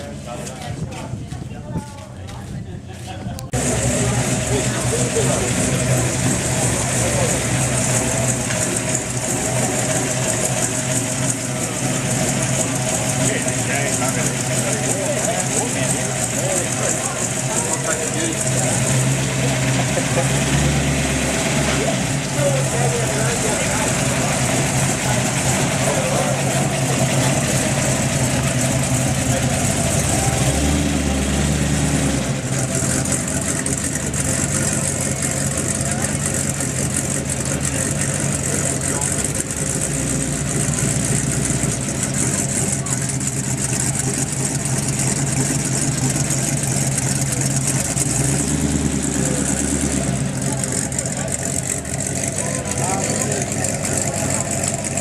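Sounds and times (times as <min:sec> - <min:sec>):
car engine running at low revs: 0:00.0 - 0:55.0.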